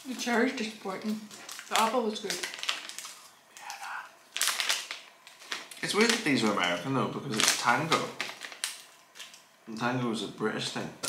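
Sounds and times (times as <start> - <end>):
plastic wrappers crinkling: 0.0 - 9.5.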